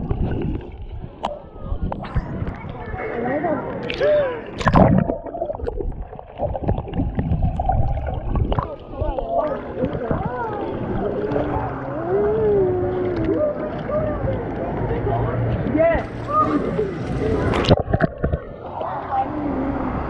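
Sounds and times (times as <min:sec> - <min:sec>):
muffled water churning and bubbling: 0:00.0 - 0:20.0.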